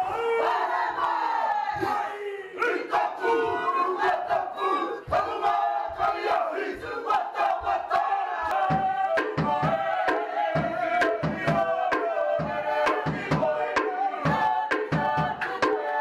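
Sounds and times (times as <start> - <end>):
group chanting and shouting: 0.0 - 16.0
sharp percussive hits: 8.6 - 16.0.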